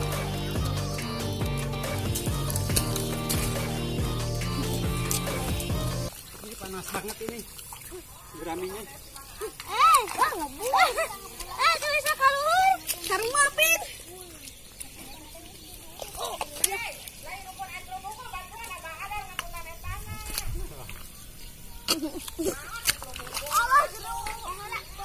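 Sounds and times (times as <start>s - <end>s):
children calling out and chattering: 9.2s - 20.8s, 21.5s - 25.0s.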